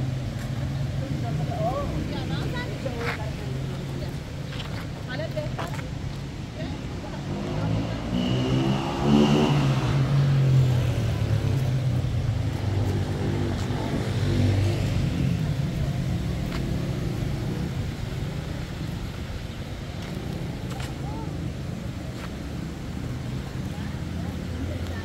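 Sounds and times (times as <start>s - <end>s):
vehicle engine passing by: 7.2s - 18.9s.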